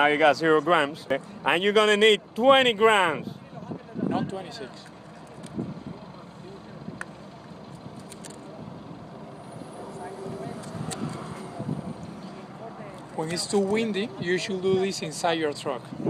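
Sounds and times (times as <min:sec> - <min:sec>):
outdoor background noise: 0:00.0 - 0:16.0
vehicle passing: 0:08.0 - 0:15.9.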